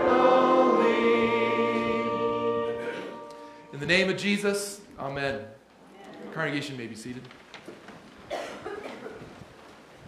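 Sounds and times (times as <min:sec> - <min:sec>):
person coughing: 0:08.3 - 0:09.2.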